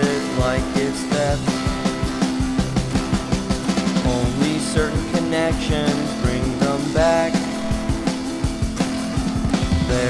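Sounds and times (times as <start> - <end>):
electric guitar lines: 0.0 - 10.0
steady drum beat: 0.0 - 10.0.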